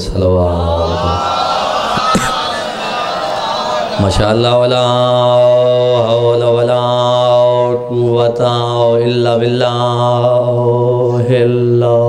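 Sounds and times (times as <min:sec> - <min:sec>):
man chanting into a microphone: 0:00.0 - 0:01.1, 0:04.0 - 0:12.0.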